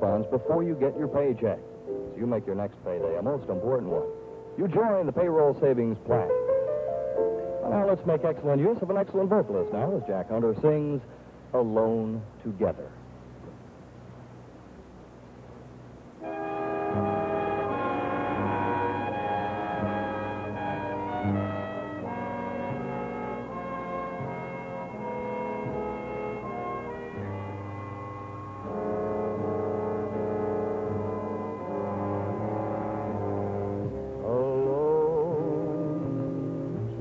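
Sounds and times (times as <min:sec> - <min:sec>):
big band brass chords: 0:16.2 - 0:37.0.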